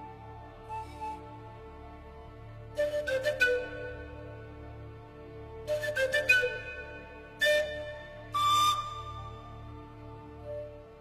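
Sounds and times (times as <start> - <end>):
soft orchestral accompaniment: 0.0 - 11.0.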